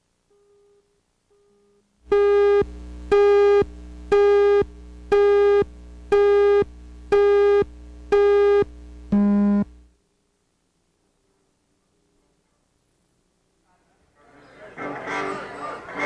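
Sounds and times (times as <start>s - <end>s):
steady hum: 0.0s - 10.8s
buzzy electronic beeps: 1.6s - 9.8s.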